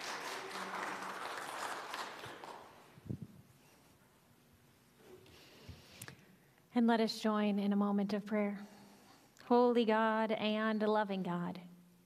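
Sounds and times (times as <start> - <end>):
congregation applauding: 0.0 - 2.9.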